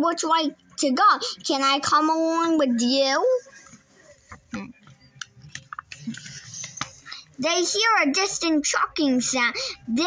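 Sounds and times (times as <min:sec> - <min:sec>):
book page turning: 0:05.5 - 0:07.1.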